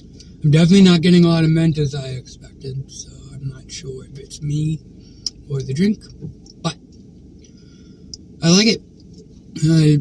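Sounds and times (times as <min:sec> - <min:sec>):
low hum inside a car: 0:00.0 - 0:10.0.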